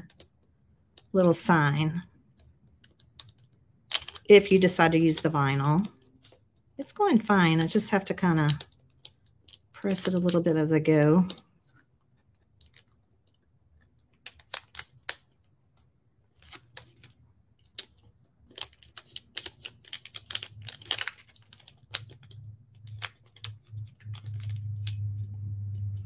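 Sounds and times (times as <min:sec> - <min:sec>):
tape peeling off vinyl crackling: 0:17.9 - 0:26.0.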